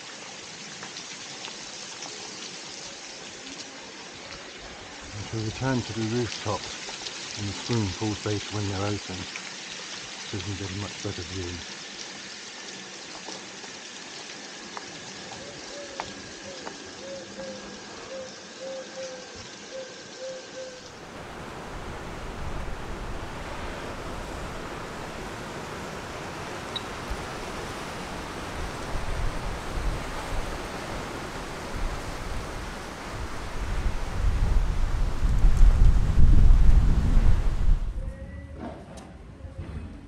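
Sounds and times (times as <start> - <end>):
wind buffeting microphone: 21.1 - 38.1.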